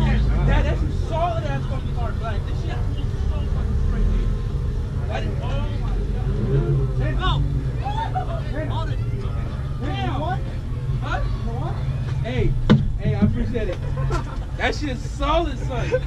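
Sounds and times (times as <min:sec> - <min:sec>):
car engine idling: 0:00.0 - 0:16.0
people talking: 0:00.0 - 0:16.0.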